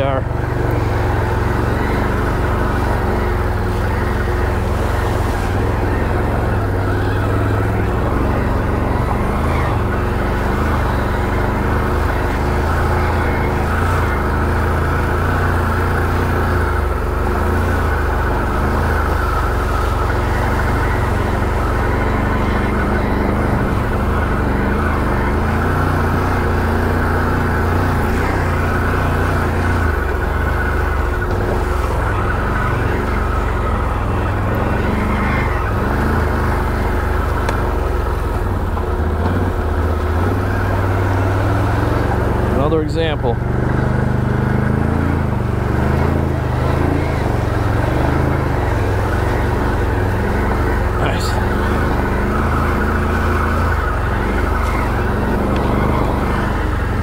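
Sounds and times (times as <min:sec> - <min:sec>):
atv engine running: 0:00.0 - 0:57.0.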